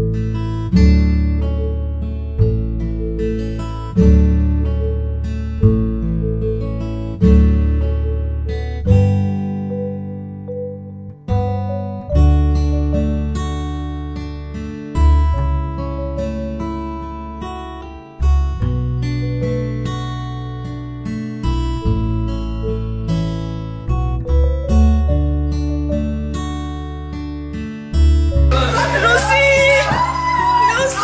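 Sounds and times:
acoustic guitar chords: 0.0 - 31.0.

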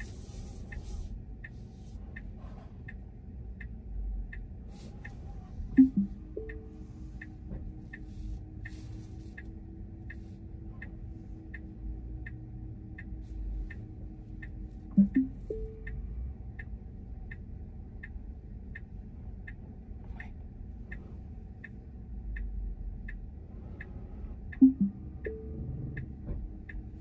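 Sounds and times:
turn signal ticking: 0.0 - 27.0
low sound with brief tone: 4.7 - 9.4, 14.8 - 16.1, 24.5 - 26.5.

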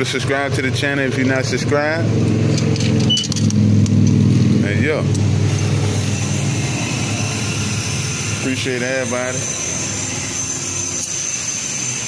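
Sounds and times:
motor droning: 1.6 - 12.0.

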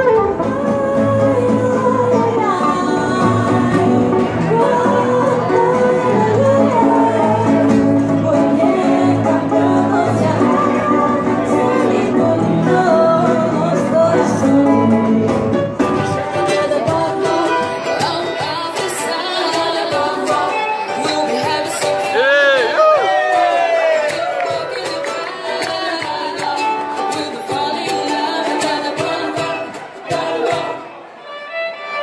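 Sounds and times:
voices singing with accompaniment: 0.0 - 32.0.

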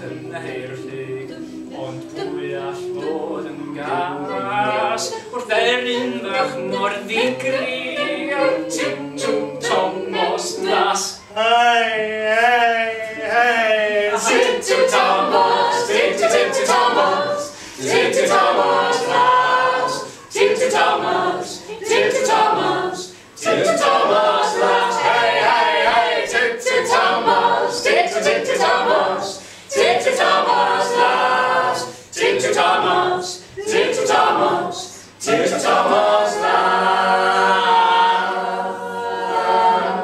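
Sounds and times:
mixed vocal group singing in harmony: 0.0 - 40.0
singers breathing: 17.5 - 17.9, 20.0 - 20.3, 23.1 - 23.4, 29.4 - 29.7, 31.9 - 32.2.

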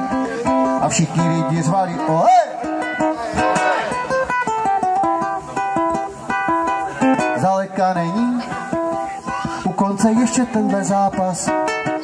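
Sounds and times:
guitar picking a run of notes: 0.0 - 12.0.

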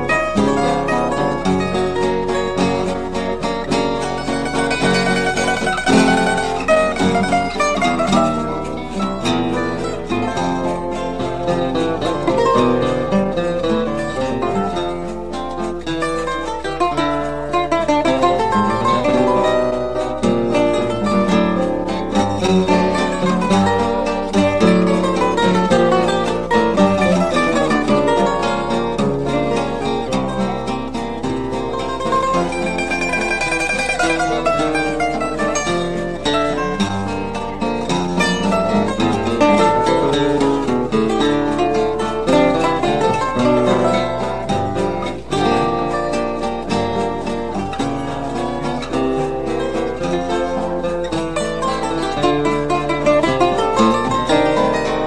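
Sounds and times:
plucked cavaquinho melody: 0.0 - 55.0
strummed guitar chords: 0.0 - 55.0.

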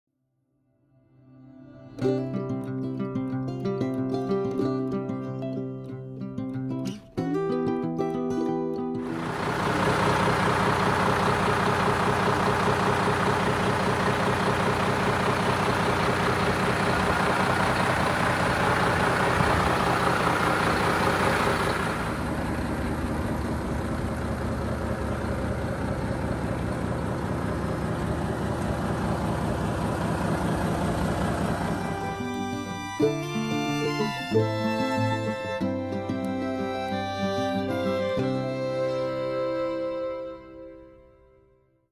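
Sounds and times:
diesel truck engine idling: 9.0 - 40.2.

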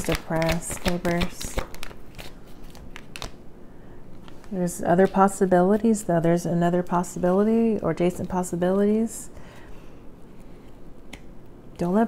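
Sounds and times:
woman's voice: 0.0 - 1.6, 4.5 - 9.4, 11.8 - 12.0.

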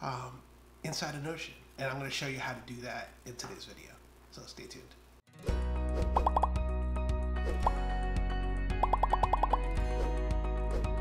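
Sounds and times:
rising bloop pop effects: 6.2 - 6.6, 8.8 - 9.6.

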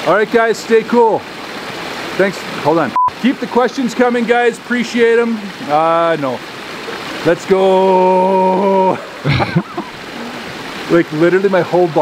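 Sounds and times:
waterfall cascading into pond: 0.0 - 12.0
man laughing: 8.4 - 10.3.

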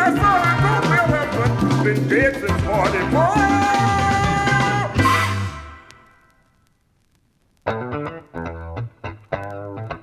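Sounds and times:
funk band playing: 0.0 - 5.9.

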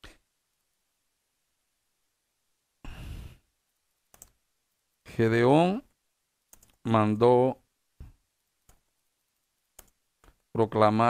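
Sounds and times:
person sighing: 2.8 - 3.5.

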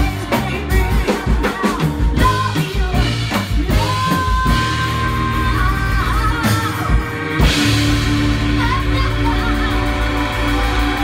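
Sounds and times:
raspy female voice singing: 0.0 - 7.2
electric bass: 0.0 - 11.0.

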